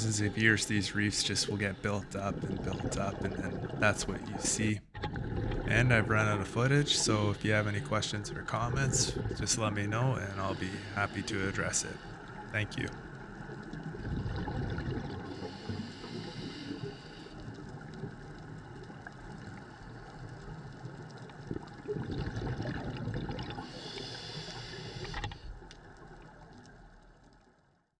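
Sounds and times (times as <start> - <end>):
underwater exhaust bubbles: 0.2 - 27.1
diver regulator breathing: 10.3 - 12.3, 15.1 - 17.6, 23.6 - 25.6.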